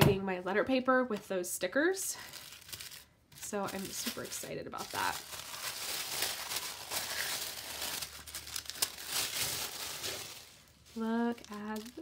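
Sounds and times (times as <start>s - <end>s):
tissue paper crinkling: 2.2s - 12.0s.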